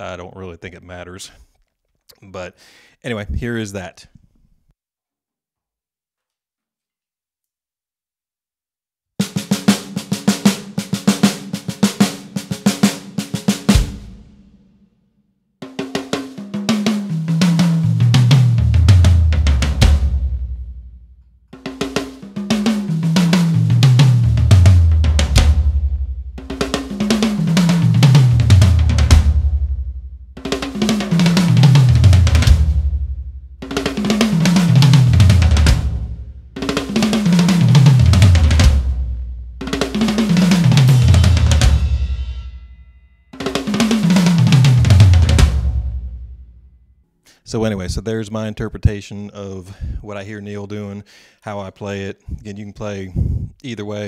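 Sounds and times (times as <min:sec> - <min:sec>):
drum fill down the toms: 0:09.2 - 0:14.6, 0:15.6 - 0:42.7, 0:43.4 - 0:46.6
cymbals: 0:39.7 - 0:46.1.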